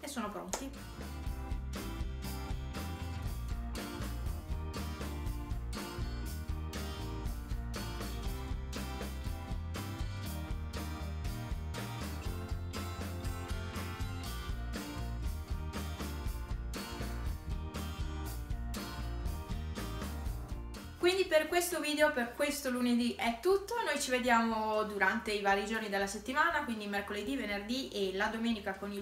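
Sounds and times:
background music with steady beat: 0.0s - 24.7s.

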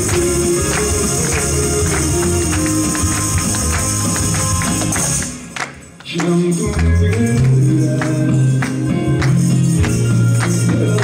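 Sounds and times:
recorded worship song: 0.0s - 11.0s
tambourines jingling: 0.0s - 11.0s.

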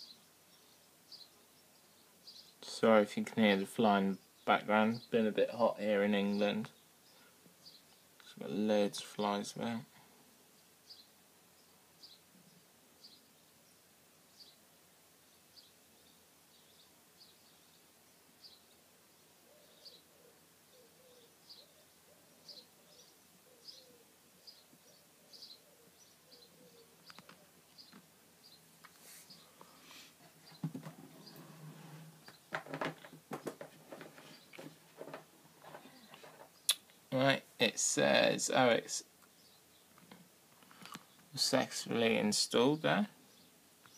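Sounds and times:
faint bird chirps: 0.0s - 2.8s, 10.5s - 32.5s
clicks and rustling: 30.4s - 36.9s.

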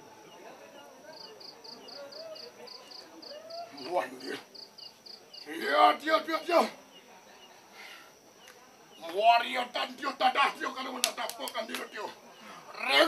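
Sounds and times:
cricket chirping: 0.0s - 13.0s.

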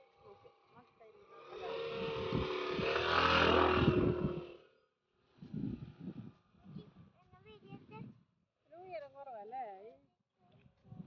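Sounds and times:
motor vehicle passing: 0.0s - 6.2s.

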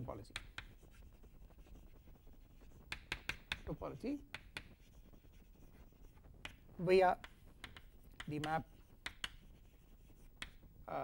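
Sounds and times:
chalk scratching on a chalkboard: 0.0s - 10.6s
chalk tapping on a chalkboard: 0.2s - 10.7s.

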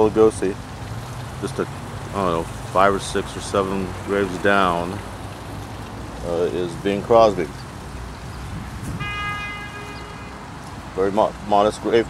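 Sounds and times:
horn held note: 9.0s - 10.4s.

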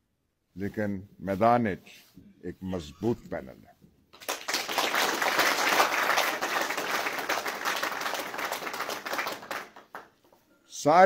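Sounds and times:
audience applause: 4.2s - 10.1s.

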